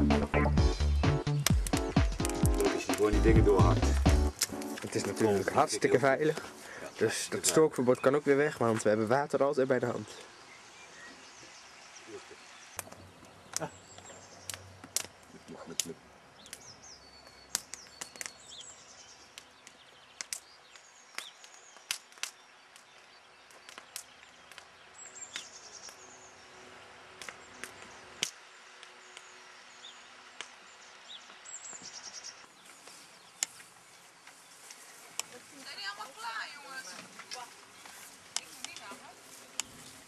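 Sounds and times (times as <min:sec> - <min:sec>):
small birds chirping: 0:00.0 - 0:40.0.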